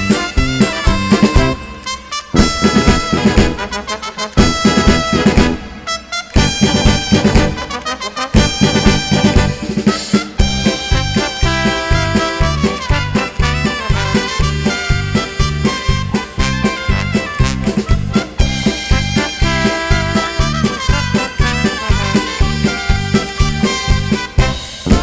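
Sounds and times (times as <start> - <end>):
brass march music: 0.0 - 25.0.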